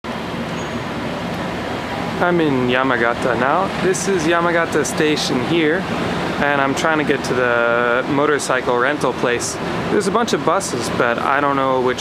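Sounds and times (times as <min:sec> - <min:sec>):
road traffic noise: 0:00.0 - 0:12.0
faint low engine hum: 0:00.1 - 0:12.0.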